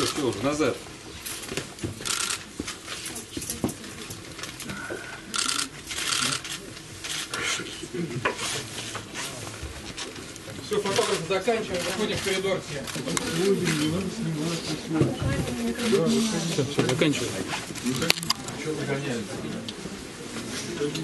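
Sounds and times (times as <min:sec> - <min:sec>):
murmured voices: 0:03.0 - 0:21.0
rustling and scraping: 0:08.3 - 0:12.4.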